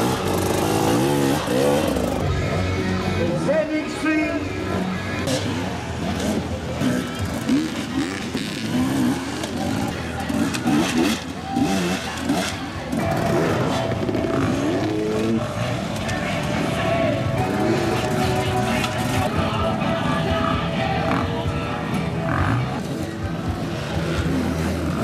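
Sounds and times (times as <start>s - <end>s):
motorcycle engines revving: 0.0s - 25.0s.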